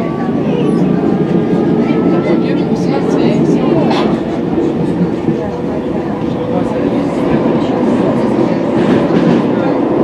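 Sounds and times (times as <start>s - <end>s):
train wheels rumbling: 0.0s - 10.0s.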